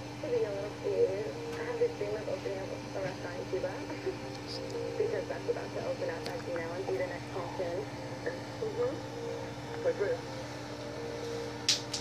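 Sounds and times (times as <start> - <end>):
mechanical hum: 0.0 - 12.0.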